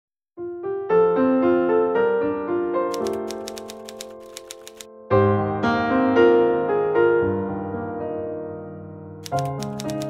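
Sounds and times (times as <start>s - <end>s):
typewriter key clacks: 2.9s - 4.9s, 9.2s - 10.0s.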